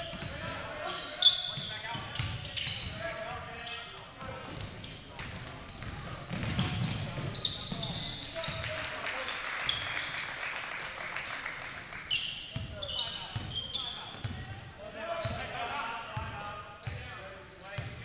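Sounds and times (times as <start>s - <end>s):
sneakers squeaking on court: 0.0s - 8.6s, 11.5s - 15.6s, 16.2s - 18.0s.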